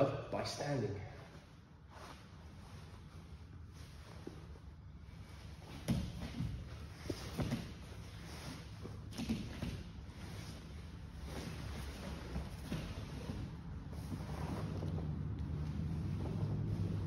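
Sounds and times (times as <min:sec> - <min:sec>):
fabric rustling: 0:01.3 - 0:17.0
bare feet shifting on mat: 0:01.9 - 0:17.0.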